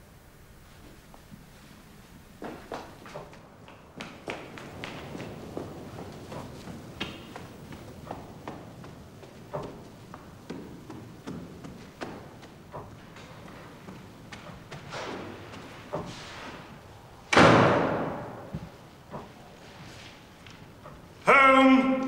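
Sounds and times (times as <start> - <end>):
footsteps on wooden stairs: 0.8 - 22.0.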